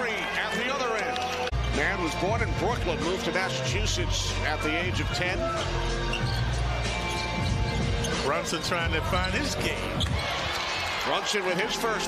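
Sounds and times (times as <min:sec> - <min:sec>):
music playing: 0:01.5 - 0:12.0.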